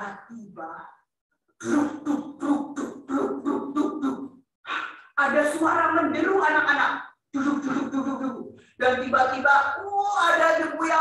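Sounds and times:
woman making rhythmic vocal pulses: 1.6s - 5.2s.

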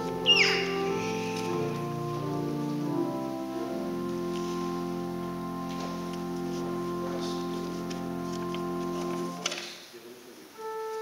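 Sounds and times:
pipe organ playing sustained chords: 0.0s - 9.8s, 10.6s - 11.0s.

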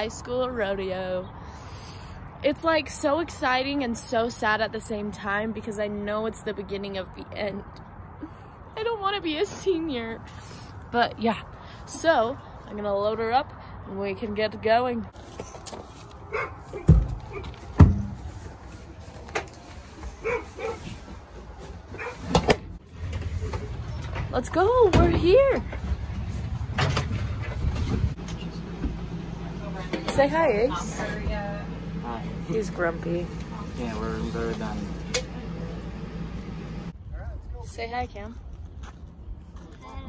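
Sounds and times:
hoof thumps on trailer floor: 16.7s - 18.2s.

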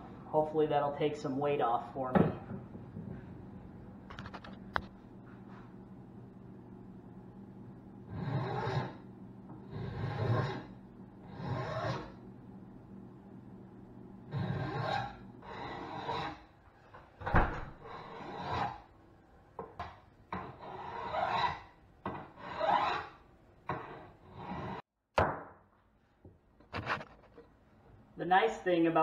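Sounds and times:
wood rasp scraping: 8.1s - 9.0s, 9.6s - 12.2s, 14.3s - 16.5s, 17.8s - 18.9s, 20.4s - 24.8s.

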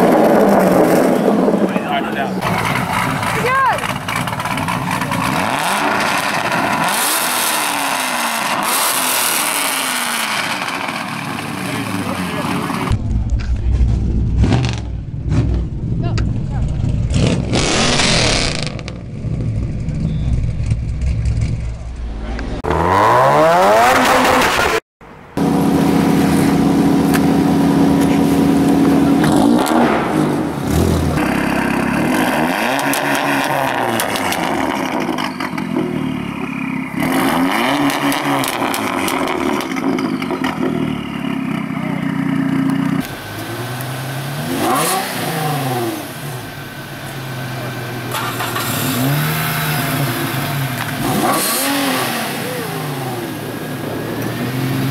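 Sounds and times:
car engines revving: 0.0s - 54.9s.

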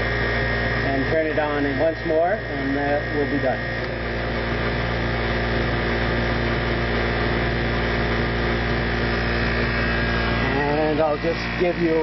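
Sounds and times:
electric motor humming: 0.0s - 12.0s.

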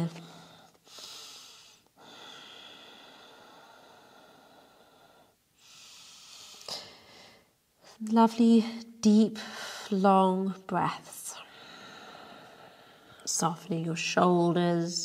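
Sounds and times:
woman breathing deeply: 0.2s - 7.6s, 11.4s - 13.3s.

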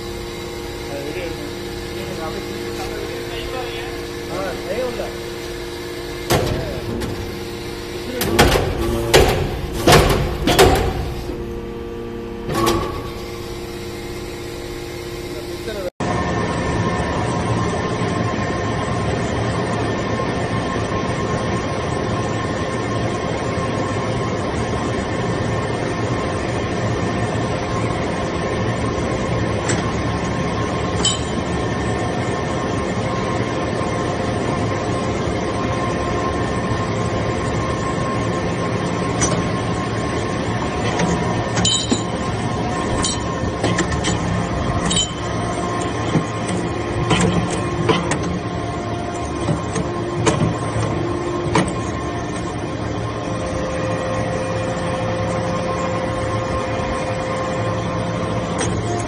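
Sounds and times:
hydraulic pump hum and whine: 0.0s - 59.0s.

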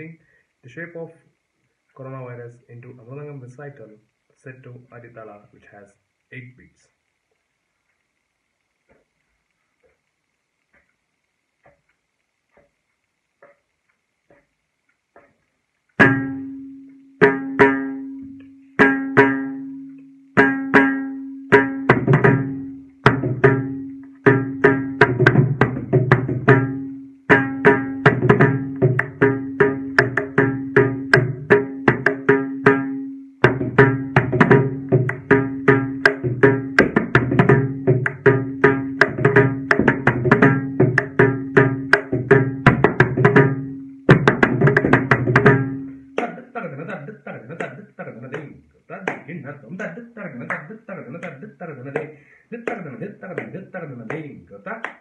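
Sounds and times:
mridangam drumming: 16.0s - 18.1s, 18.8s - 19.7s, 20.4s - 46.6s, 47.5s - 55.0s.

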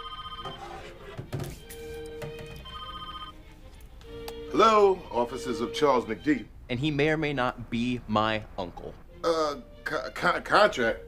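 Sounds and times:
phone electronic ringtone: 0.0s - 0.9s, 1.8s - 3.4s.

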